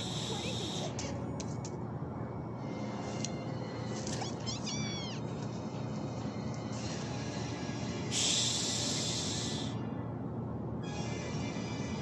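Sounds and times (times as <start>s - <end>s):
background music: 0.0s - 4.5s, 5.2s - 12.0s
squeaky cartoon animal cries: 4.2s - 5.3s.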